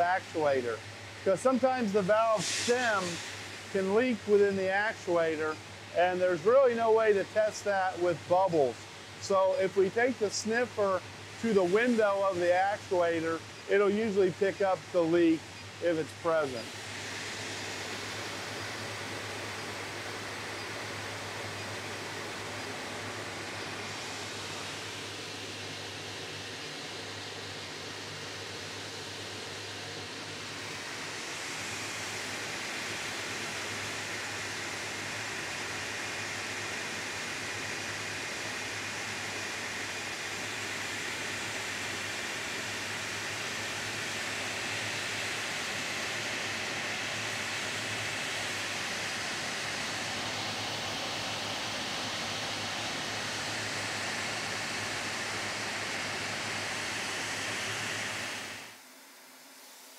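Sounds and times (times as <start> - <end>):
boiler burner roaring: 0.0 - 58.8.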